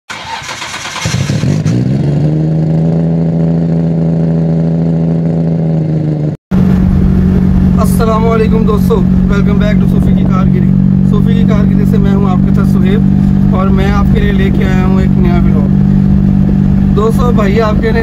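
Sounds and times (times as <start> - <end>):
car engine starting and revving: 0.1 - 18.0
engine hum inside car cabin: 0.3 - 18.0.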